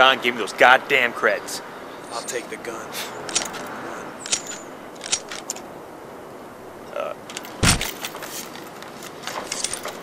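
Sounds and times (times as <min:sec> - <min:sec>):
metallic gun clicks: 0:04.2 - 0:05.7.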